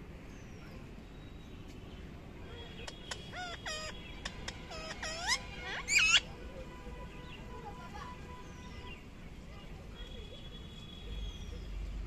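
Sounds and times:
parakeet chirps and squawks: 2.7 - 6.3.

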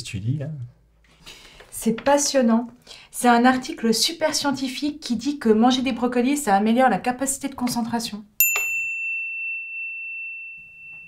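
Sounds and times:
bell-like chime ringing: 8.4 - 11.0.

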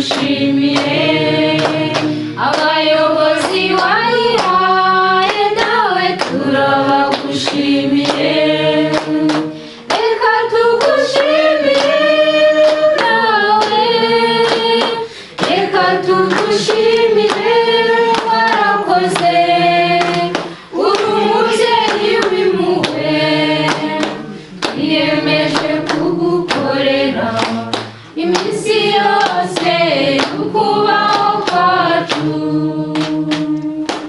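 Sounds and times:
group of voices singing: 0.0 - 34.0
rhythmic hand clapping: 0.0 - 34.0.

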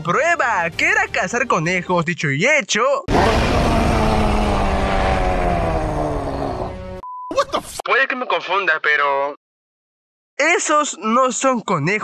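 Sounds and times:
beast roaring: 3.1 - 6.9.

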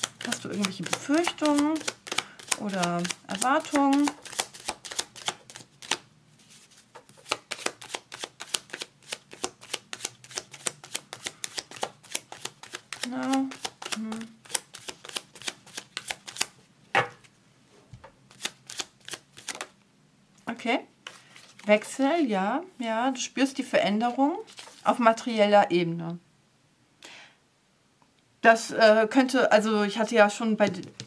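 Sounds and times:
cards being shuffled: 0.0 - 16.6, 18.3 - 19.7, 21.0 - 21.9, 24.1 - 24.9
person humming: 13.0 - 14.4.

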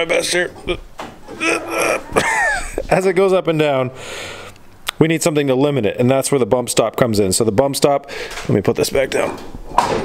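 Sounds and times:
man grunting with effort: 1.3 - 2.8.

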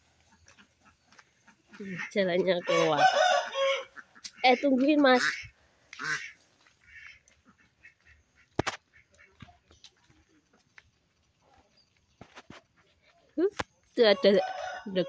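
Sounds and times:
fowl calling: 0.0 - 10.6, 14.0 - 15.0
footsteps on dirt path: 0.0 - 15.0.

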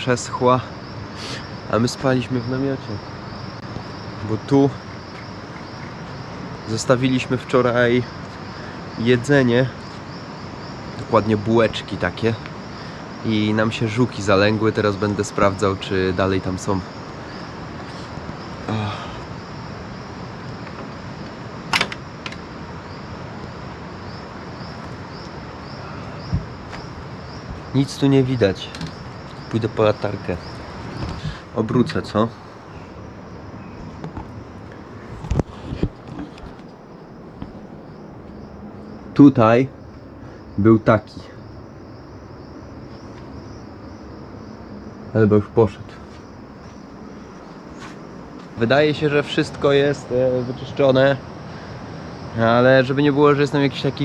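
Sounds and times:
night insects chirring: 0.0 - 54.0
steady outdoor hiss: 0.0 - 54.0
faint rustle: 17.0 - 19.4, 30.3 - 33.1, 33.8 - 38.9, 45.9 - 48.6
metal latch click: 21.7 - 22.4, 28.7 - 29.0.

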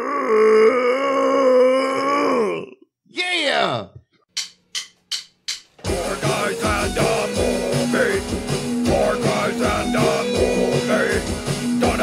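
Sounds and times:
held vocal shout: 0.0 - 4.0.

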